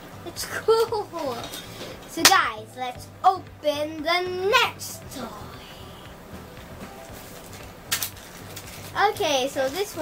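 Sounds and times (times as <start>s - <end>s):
plastic packet rustling: 7.2s - 10.0s
sharp plastic crinkle: 7.2s - 10.0s.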